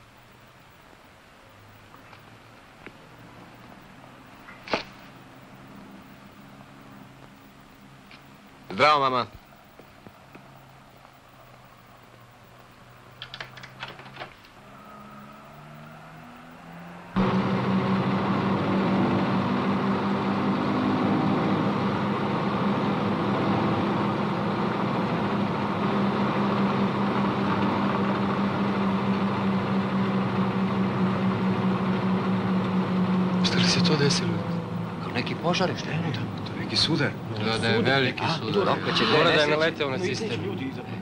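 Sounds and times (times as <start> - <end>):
bus engine and road drone: 0.0 - 41.0
low hum: 14.5 - 39.0.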